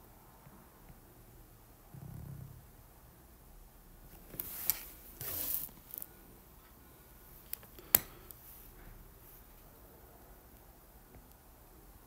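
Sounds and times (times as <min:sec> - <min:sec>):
scratchy rubbing: 0:04.4 - 0:06.1.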